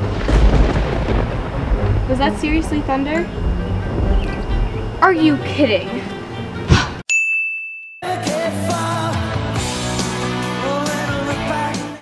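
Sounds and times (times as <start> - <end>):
thunder clap: 0.0 - 7.0.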